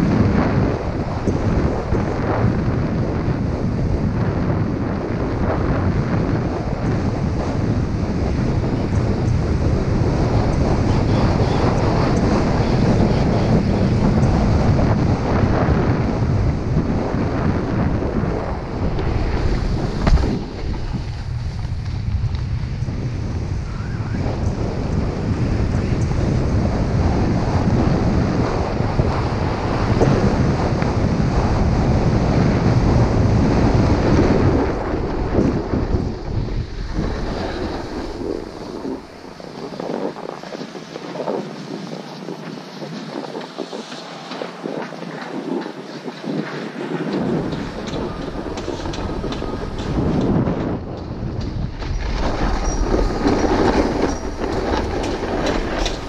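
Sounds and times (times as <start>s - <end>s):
wind buffeting microphone: 0.0s - 56.0s
skis running on snow: 18.8s - 22.9s, 36.6s - 56.0s
scraping of snow: 36.7s - 42.5s, 51.6s - 56.0s.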